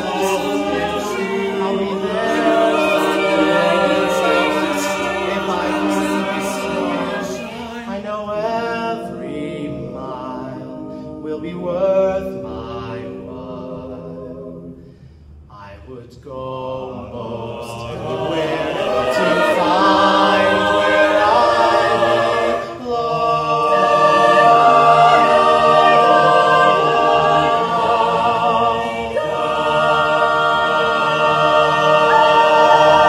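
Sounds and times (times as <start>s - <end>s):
choir singing sustained chords: 0.0s - 33.0s.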